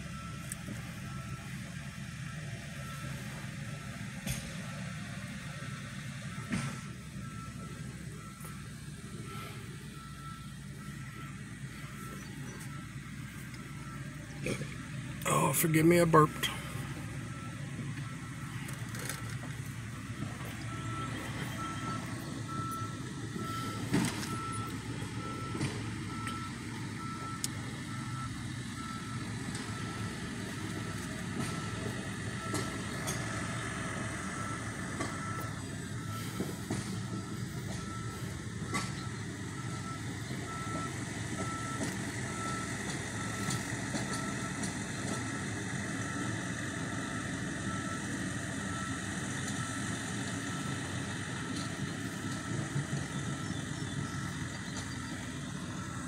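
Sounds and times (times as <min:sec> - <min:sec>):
truck backup alarm beeping: 0:00.0 - 0:56.0
truck engine running: 0:00.0 - 0:56.0.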